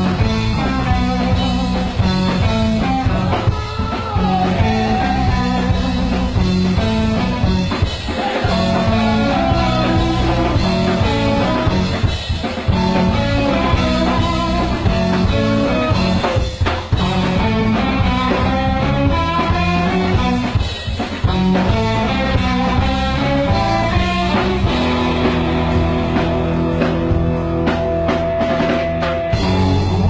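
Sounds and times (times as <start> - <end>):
drum kit: 0.0 - 30.0
electric bass: 0.0 - 30.0
electric guitars: 0.0 - 30.0.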